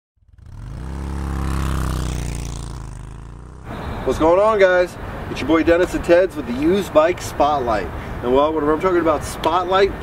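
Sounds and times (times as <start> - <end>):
motorcycle engine: 0.2 - 4.3.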